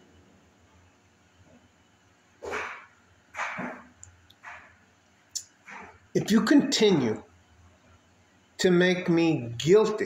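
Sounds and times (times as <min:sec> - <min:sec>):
dog barking: 0:02.4 - 0:03.8.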